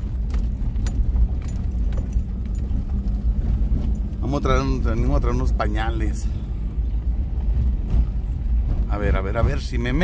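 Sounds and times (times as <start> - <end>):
car engine and road rumble: 0.0 - 10.0
clicks and rattles in car: 0.0 - 10.0.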